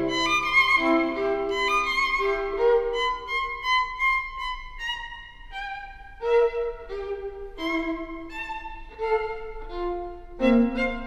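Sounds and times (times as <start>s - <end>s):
solo violin melody: 0.0s - 11.0s.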